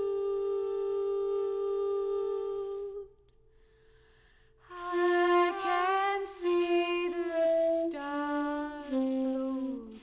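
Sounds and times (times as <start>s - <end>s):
tenor saxophone held notes: 4.7s - 10.0s.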